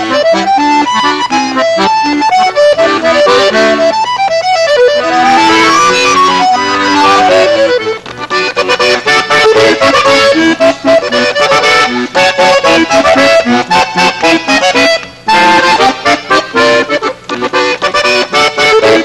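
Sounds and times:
accordion duet: 0:00.0 - 0:19.0.

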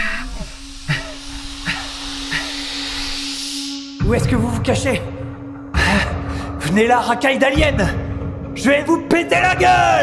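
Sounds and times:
mouth-made air hissing: 0:00.0 - 0:06.6.

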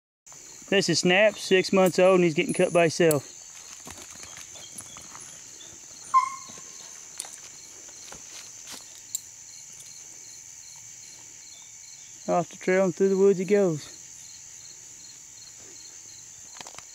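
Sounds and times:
footsteps clicking and rustling: 0:00.3 - 0:10.1, 0:16.4 - 0:16.9
crickets and night insects droning: 0:00.3 - 0:16.9
short high yelp: 0:06.1 - 0:06.6.

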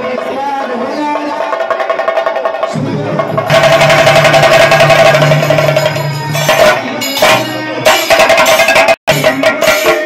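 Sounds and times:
drum band playing: 0:00.0 - 0:10.0.

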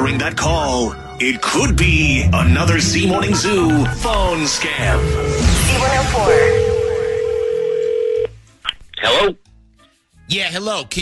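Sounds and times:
telephone ringback tone: 0:04.7 - 0:08.3.

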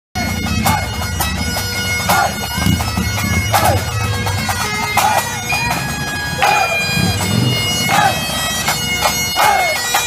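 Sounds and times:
bagpipes playing a tune: 0:00.2 - 0:10.0
person shouting: 0:07.9 - 0:08.2.

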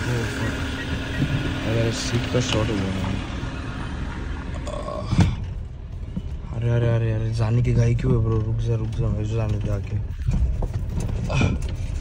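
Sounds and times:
car rumble from inside cabin: 0:00.0 - 0:12.0.

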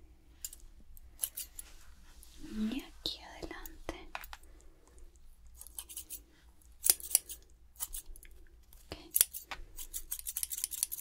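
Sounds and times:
scissors snipping hair: 0:01.2 - 0:01.6, 0:05.5 - 0:08.3, 0:09.1 - 0:11.0
woman whispering: 0:02.4 - 0:04.2, 0:08.9 - 0:09.2.

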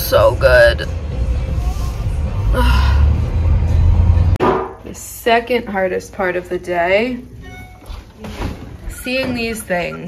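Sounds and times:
woman sighing: 0:02.4 - 0:03.2.

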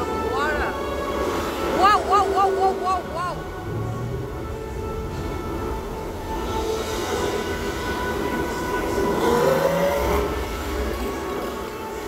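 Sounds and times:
low rumble of boat in tunnel: 0:00.0 - 0:12.0.

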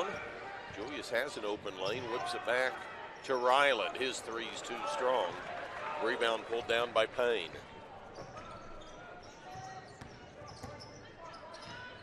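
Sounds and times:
murmur of crowd voices: 0:00.0 - 0:12.0.

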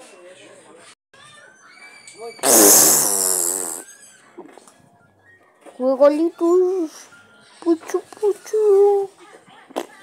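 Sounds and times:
rasping buzzing noise: 0:02.4 - 0:03.8.

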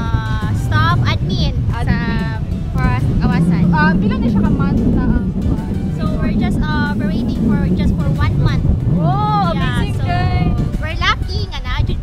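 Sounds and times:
low rumble: 0:00.0 - 0:12.0
woman speaking: 0:09.2 - 0:10.9.

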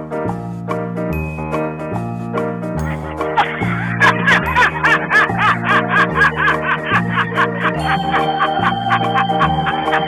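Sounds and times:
man laughing: 0:02.8 - 0:10.0.

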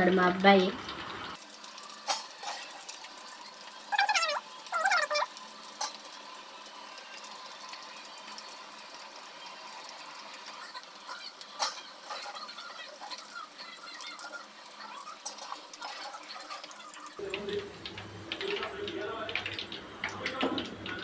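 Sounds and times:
food deep-frying in hot oil: 0:00.0 - 0:21.0.

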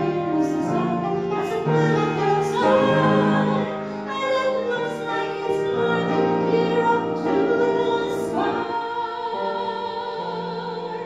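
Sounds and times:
musical accompaniment: 0:00.0 - 0:11.0
woman singing into microphone: 0:00.0 - 0:11.0.

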